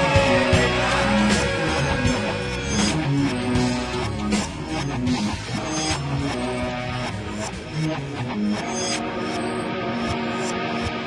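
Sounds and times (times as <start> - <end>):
hard rock band playing: 0.0 - 11.0
rock guitar: 0.0 - 11.0.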